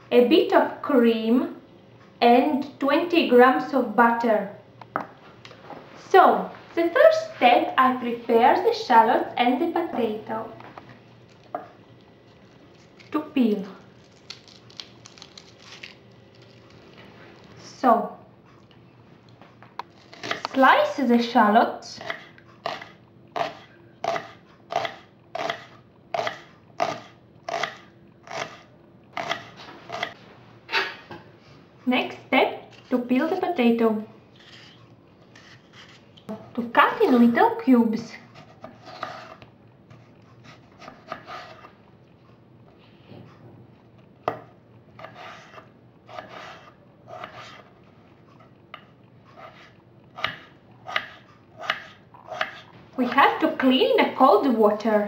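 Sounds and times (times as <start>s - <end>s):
knife slicing potato: 22.0s - 30.2s, 38.2s - 41.8s, 44.3s - 52.7s
knife slicing on cutting board: 45.0s - 47.7s, 49.3s - 52.7s
knife chopping on board: 50.2s - 52.7s.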